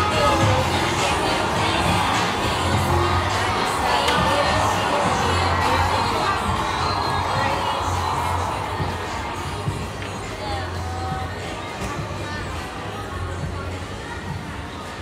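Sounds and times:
music with pulsing bass: 0.0s - 14.7s
chatter of many voices: 0.0s - 15.0s.

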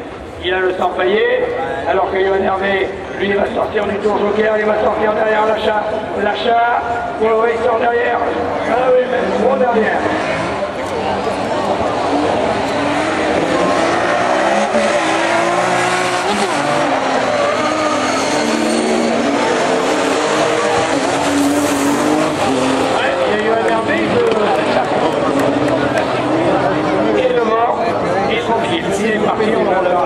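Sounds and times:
racing car engines revving: 0.0s - 30.0s.

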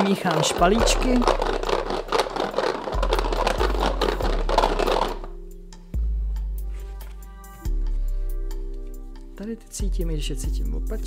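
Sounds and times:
cards shuffled in a box: 0.0s - 5.3s
background music with low notes: 0.0s - 11.0s.

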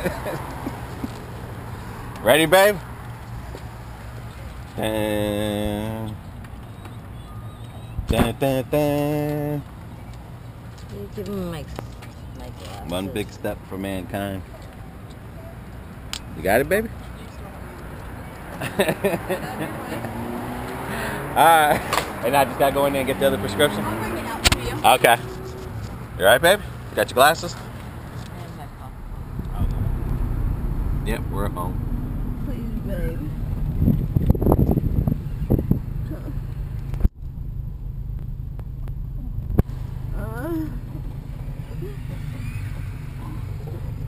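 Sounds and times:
car engine idling: 0.0s - 44.0s.

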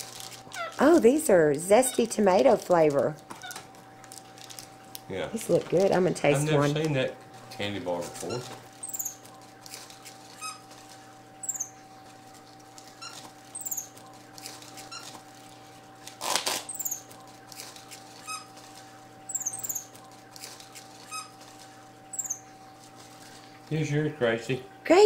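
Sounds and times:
faint steady hum: 0.0s - 25.0s
monkeys squeaking and chirping: 0.5s - 1.0s, 1.7s - 2.2s, 3.3s - 3.7s, 8.1s - 10.8s, 11.4s - 12.0s, 12.8s - 15.2s, 16.5s - 18.6s, 19.3s - 21.5s, 22.1s - 22.7s.

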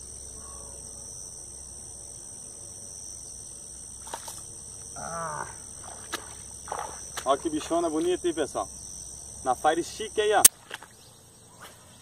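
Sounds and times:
insects buzzing: 0.0s - 12.0s
person grunting: 5.0s - 5.6s.

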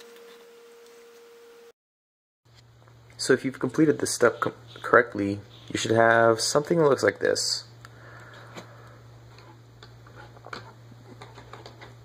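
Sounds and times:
steady low hum: 2.5s - 12.0s.

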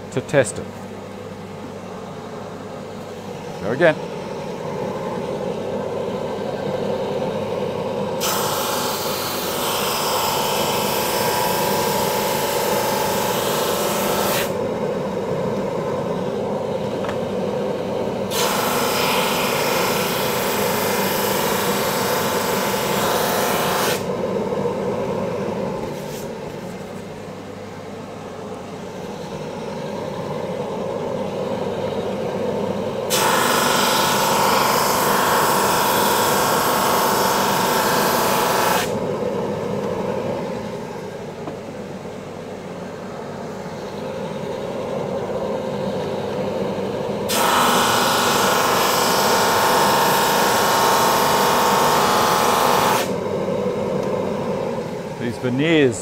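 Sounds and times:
drum sander humming: 0.8s - 56.0s.

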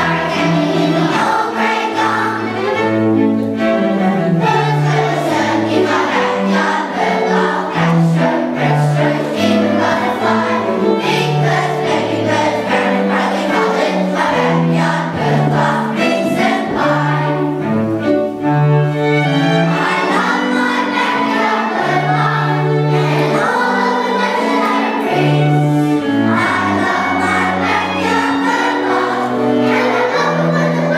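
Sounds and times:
children's choir singing: 0.0s - 30.9s
violin: 0.0s - 30.9s.

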